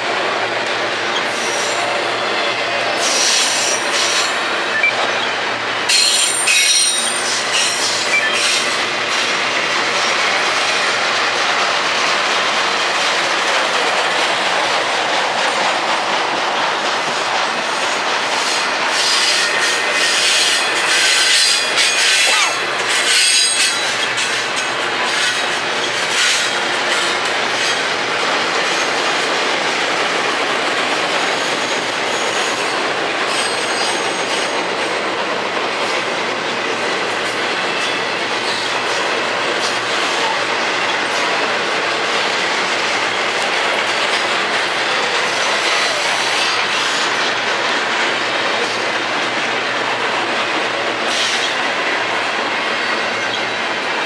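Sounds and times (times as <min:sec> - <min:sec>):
freight train rolling past: 0:00.0 - 0:54.0.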